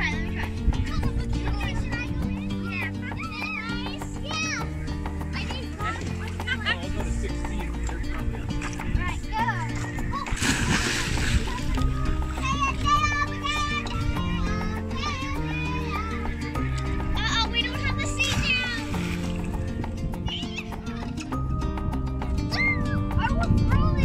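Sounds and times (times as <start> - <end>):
children's voices: 0.0 - 21.2, 22.5 - 24.0
background music: 0.0 - 24.0
child splashing into water: 10.2 - 12.5.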